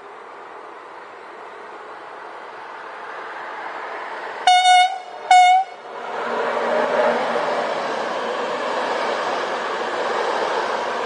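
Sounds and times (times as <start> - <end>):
train rushing past: 1.0 - 11.0
locomotive horn blasts: 4.4 - 5.8.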